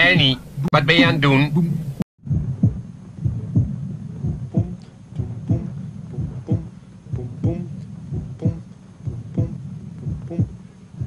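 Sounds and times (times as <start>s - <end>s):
heartbeat lub-dub: 0.0s - 11.0s
steady low hum: 0.0s - 11.0s.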